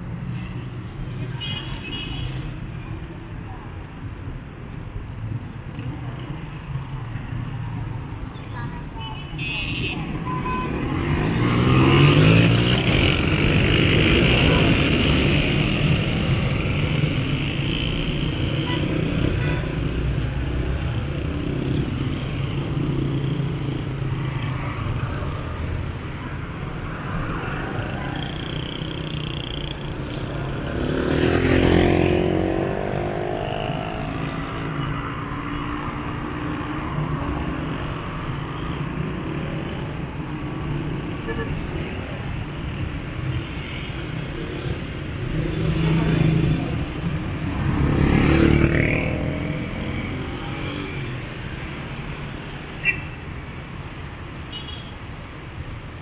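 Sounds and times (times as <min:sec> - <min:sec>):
cars and motorcycles passing: 0:00.0 - 0:56.0.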